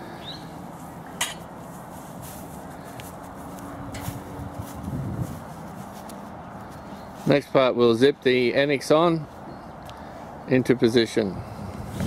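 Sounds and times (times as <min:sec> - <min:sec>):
steady outdoor hiss: 0:00.0 - 0:12.0
tent poles clicking and knocking: 0:01.2 - 0:01.5, 0:02.9 - 0:04.8.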